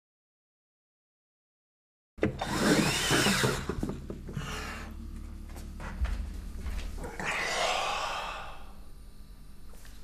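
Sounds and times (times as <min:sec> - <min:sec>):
man sighing: 0:07.0 - 0:08.8.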